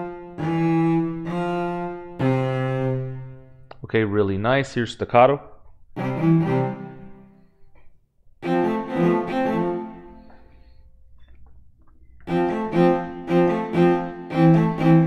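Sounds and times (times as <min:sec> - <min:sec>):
cello playing staccato notes: 0:00.0 - 0:03.8, 0:06.0 - 0:07.3, 0:08.4 - 0:10.5, 0:12.2 - 0:15.0.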